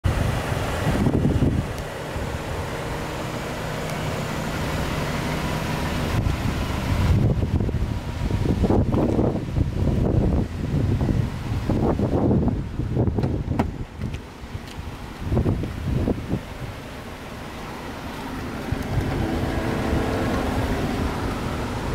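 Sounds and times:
wind buffeting microphone: 0:00.0 - 0:03.2, 0:04.9 - 0:21.9.

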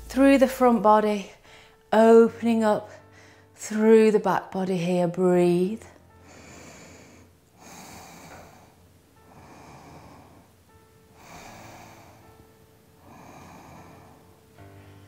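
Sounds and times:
faint background music: 0:00.0 - 0:15.0
woman breathing deeply: 0:01.4 - 0:01.9, 0:02.9 - 0:03.6, 0:06.0 - 0:15.0.

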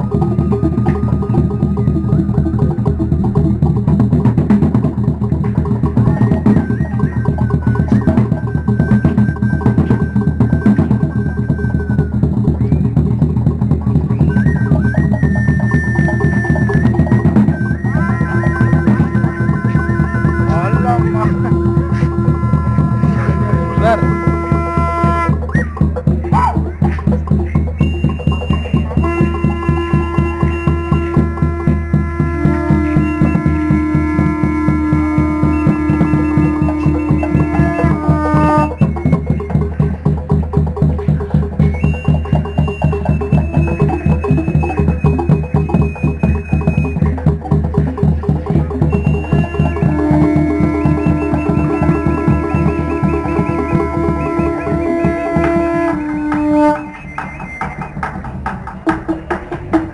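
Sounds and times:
fast drumming on large drums: 0:00.0 - 0:59.9
high whistle-like tone: 0:05.9 - 0:40.2, 0:41.4 - 0:47.3, 0:48.7 - 0:58.2.

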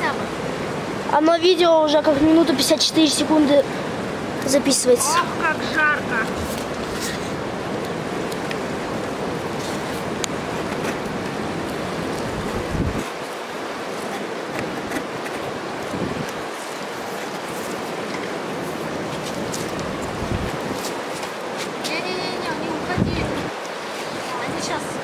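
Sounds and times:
mountain river rushing: 0:00.0 - 0:25.0
wind buffeting microphone: 0:03.6 - 0:25.0.

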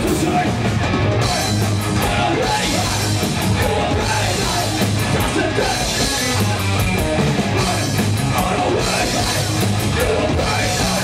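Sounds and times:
bass guitar: 0:00.0 - 0:11.0
distorted electric guitars: 0:00.0 - 0:11.0
drum kit with cymbal hits: 0:00.0 - 0:11.0.

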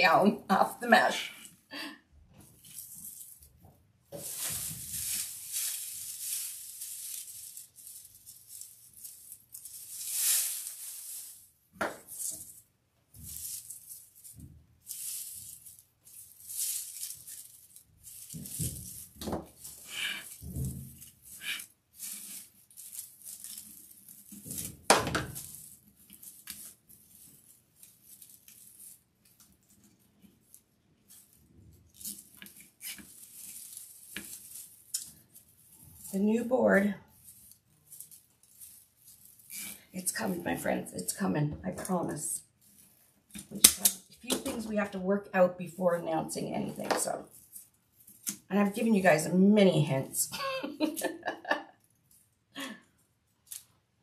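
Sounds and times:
raffia and mesh rustling: 0:02.3 - 0:44.8.

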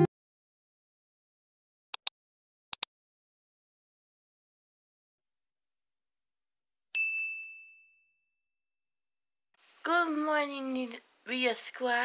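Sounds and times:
bright bell ding: 0:07.0 - 0:08.3.

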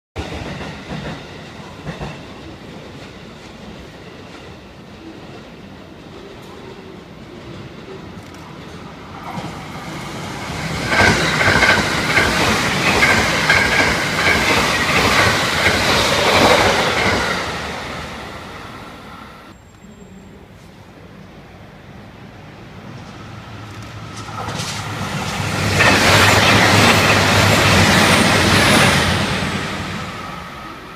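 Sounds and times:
clatter of train cars: 0:00.2 - 0:04.6, 0:10.6 - 0:17.6, 0:23.0 - 0:29.6
train wheels on rails: 0:00.2 - 0:19.6, 0:22.8 - 0:30.9.

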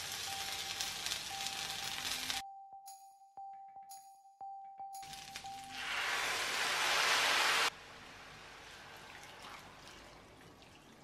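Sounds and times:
liquid hissing in a hot pan: 0:05.7 - 0:09.8.

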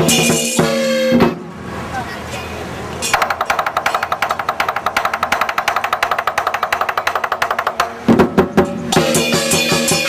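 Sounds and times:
cymbals clashing in rapid tremolo: 0:08.9 - 0:10.0.

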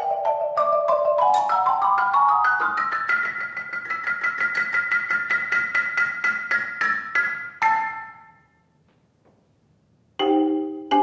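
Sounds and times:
marimba played with mallets: 0:00.0 - 0:08.5, 0:10.2 - 0:11.0.

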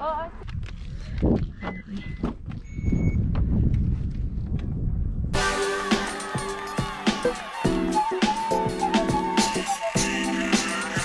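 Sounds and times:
wind rumble on microphone: 0:00.0 - 0:05.4.

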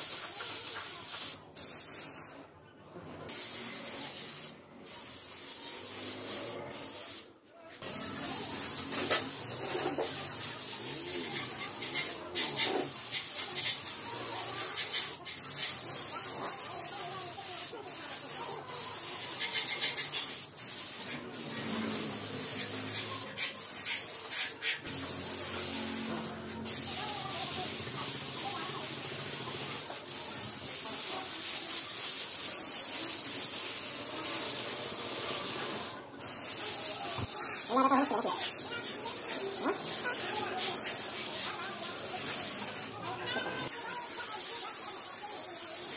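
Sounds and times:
paint spray gun hissing: 0:00.0 - 0:02.4, 0:03.3 - 0:45.9.

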